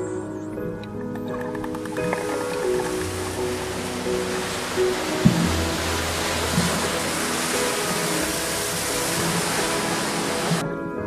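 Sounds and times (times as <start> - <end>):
background music with held tones: 0.0 - 11.0
ocean surf: 1.5 - 10.9.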